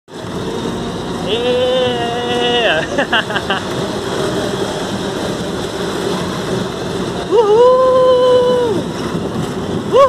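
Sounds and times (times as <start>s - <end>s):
roller coaster rumbling on track: 0.1s - 10.0s
rider crying woo: 7.2s - 8.9s.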